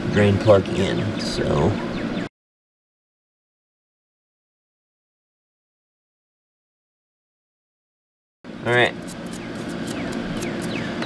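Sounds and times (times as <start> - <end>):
low engine-like drone: 0.0 - 2.3.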